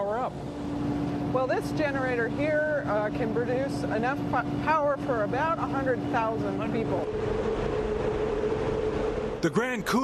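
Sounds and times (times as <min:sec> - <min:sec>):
machinery hum: 0:00.0 - 0:10.0
rushing noise: 0:07.0 - 0:10.0.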